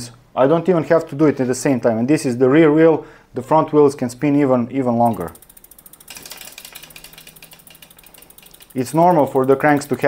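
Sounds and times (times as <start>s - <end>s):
bicycle hub ticking: 4.9s - 10.0s.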